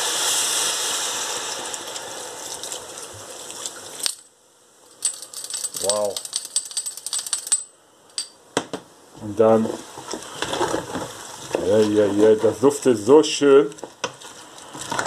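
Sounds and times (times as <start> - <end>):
beer hissing in hot pan: 0.0 - 4.0, 9.4 - 13.6
crackling fizz of small pops: 0.0 - 4.3.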